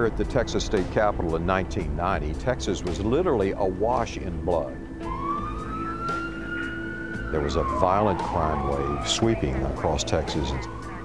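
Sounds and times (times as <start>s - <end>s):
low steady rumble: 0.0s - 7.8s
ambulance siren wailing: 3.1s - 11.0s.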